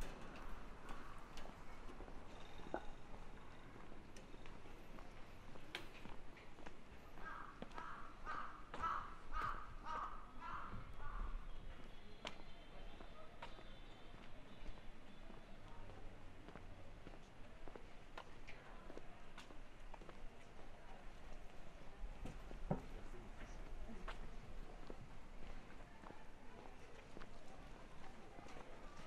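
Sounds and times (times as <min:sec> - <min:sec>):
low street ambience: 0:00.0 - 0:29.0
footsteps on pavement: 0:00.4 - 0:20.6, 0:21.2 - 0:29.0.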